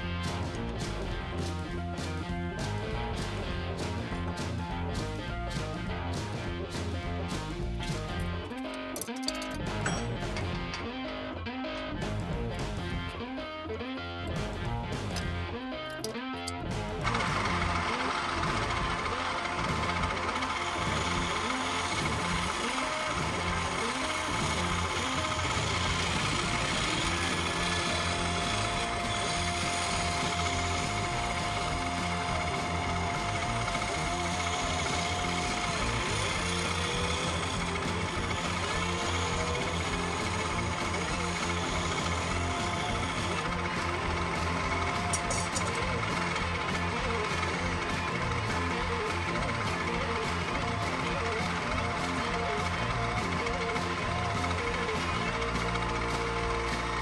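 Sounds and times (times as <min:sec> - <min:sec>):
hand tool cutting spinning wood: 0:14.3 - 0:57.0
wood lathe running: 0:16.8 - 0:57.0.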